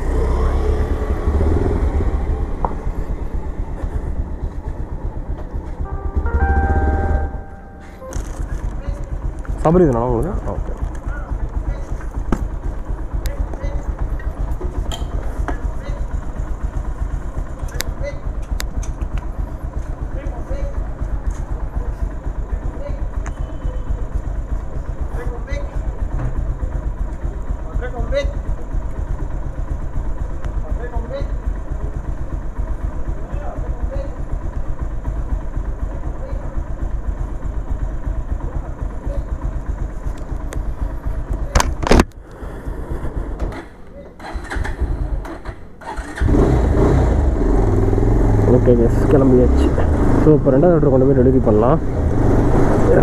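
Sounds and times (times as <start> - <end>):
motorcycle engine idling: 0.0 - 46.4, 47.2 - 53.0.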